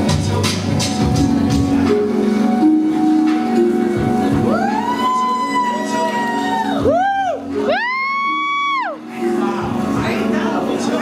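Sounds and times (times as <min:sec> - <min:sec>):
music: 0:00.0 - 0:11.0
high-pitched cheering whoops: 0:04.5 - 0:09.1.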